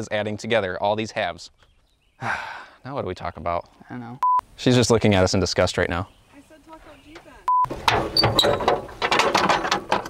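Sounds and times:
short pure beep: 4.2s - 4.4s, 7.5s - 7.7s.

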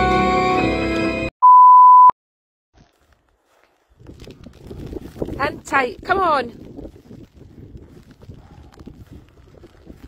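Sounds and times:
music: 0.0s - 1.3s
electronic beep: 1.4s - 2.1s.

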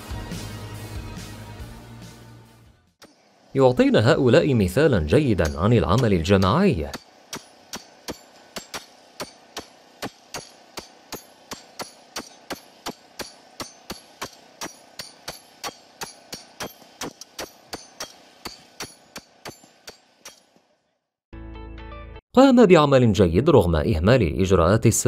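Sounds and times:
sledgehammers clanging on steel stake: 5.3s - 20.7s.

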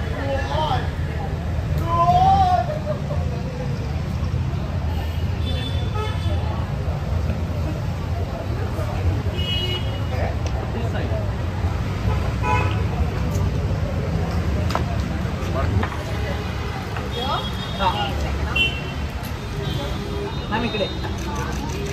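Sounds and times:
low rumble of street traffic: 0.0s - 21.9s.

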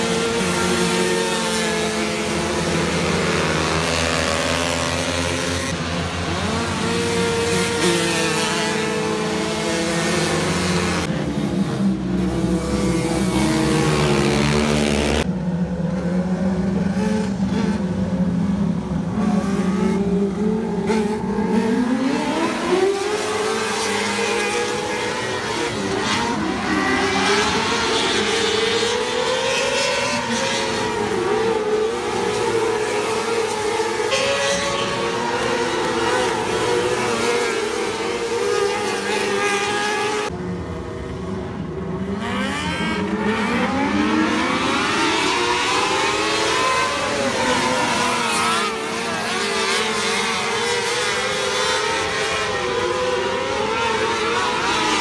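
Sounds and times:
racing engines revving past: 0.0s - 55.0s.

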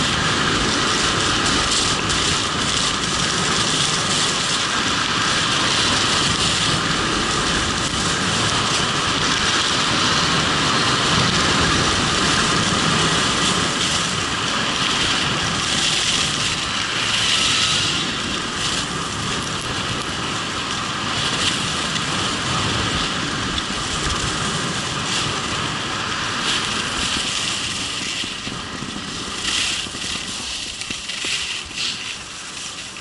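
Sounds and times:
skis scraping on packed snow: 0.0s - 33.0s
wind rushing over microphone: 0.0s - 33.0s.

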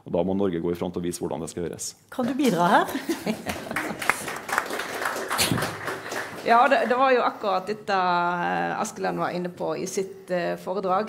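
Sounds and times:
hand claps: 3.4s - 7.0s.

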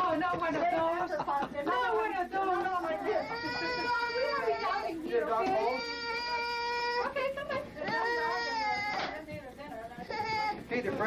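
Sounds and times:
toddler crying: 3.0s - 9.2s, 10.0s - 10.6s.

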